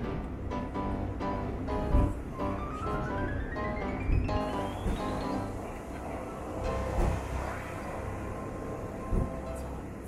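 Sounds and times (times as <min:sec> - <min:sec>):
railcar low rumble: 0:00.0 - 0:10.0.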